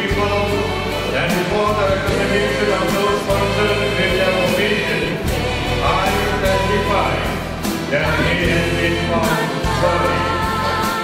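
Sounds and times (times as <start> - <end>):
choir singing: 0.0 - 11.0
low accompaniment: 0.0 - 11.0.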